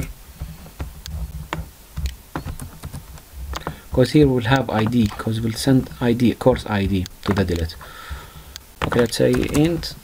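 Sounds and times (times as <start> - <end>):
keyboard keys clicking: 1.0 - 9.9.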